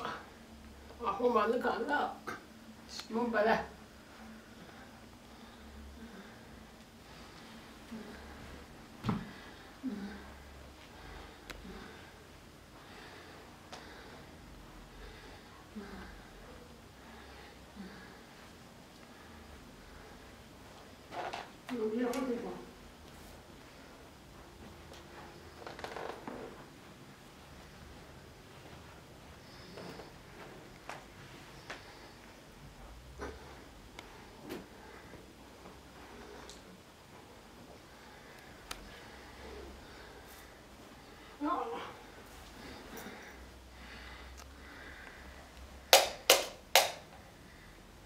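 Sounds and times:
soft rustle of movement: 0.0s - 45.8s
sharp hand claps: 45.9s - 47.1s.

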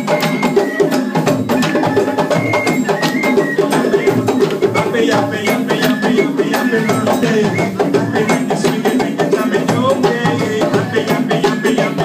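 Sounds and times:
hand drums playing fast rhythm: 0.0s - 12.0s.

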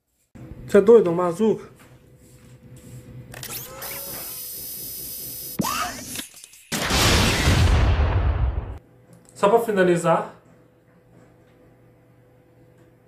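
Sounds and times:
sharp launch: 6.7s - 8.8s
loud explosion with deep rumble: 6.8s - 8.8s.

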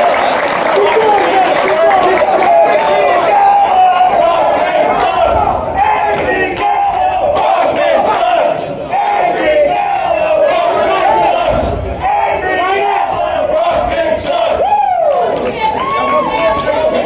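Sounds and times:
crowd shouting and yelling: 0.0s - 17.0s.

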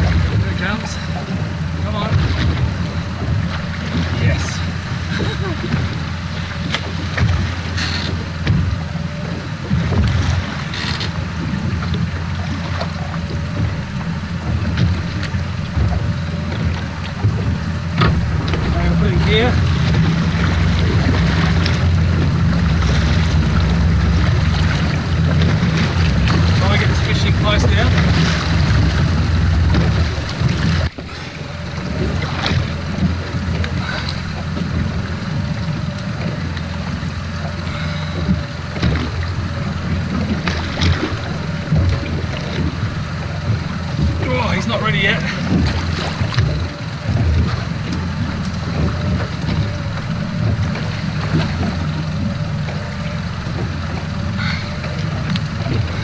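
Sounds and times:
wind on microphone: 0.0s - 44.6s
outboard engine running: 0.0s - 56.0s
sea noise: 0.0s - 56.0s.

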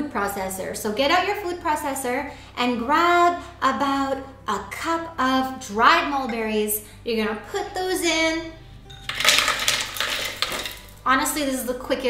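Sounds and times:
dried fruit rattling into bowl: 9.1s - 11.1s.

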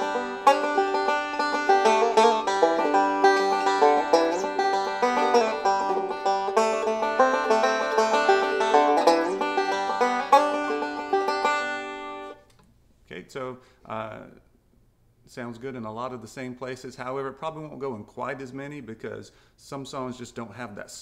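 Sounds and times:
fingerpicked banjo: 0.0s - 12.4s.

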